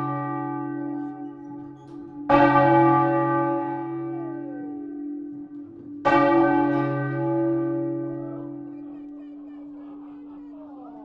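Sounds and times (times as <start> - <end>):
church bell ringing: 0.0 - 9.9.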